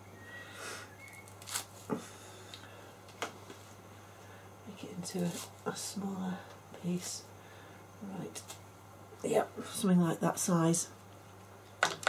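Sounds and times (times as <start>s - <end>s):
faint low hum: 0.0s - 12.0s
soft rustles: 4.9s - 5.8s.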